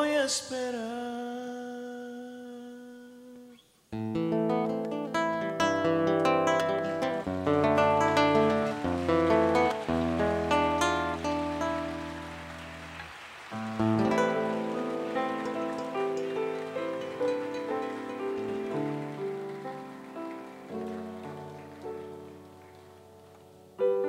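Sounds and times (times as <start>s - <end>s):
fingerstyle acoustic guitar: 4.0s - 24.0s.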